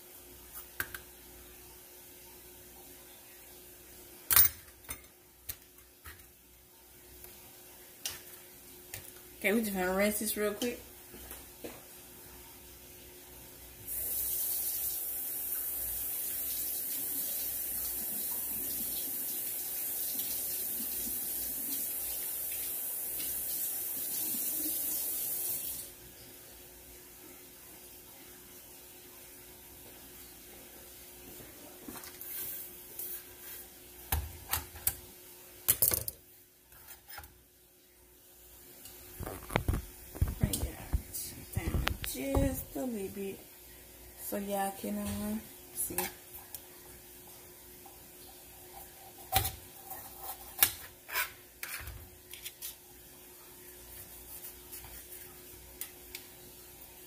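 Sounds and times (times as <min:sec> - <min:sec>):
faucet running: 0:13.8 - 0:26.0
knocks and handling sounds: 0:39.2 - 0:42.6.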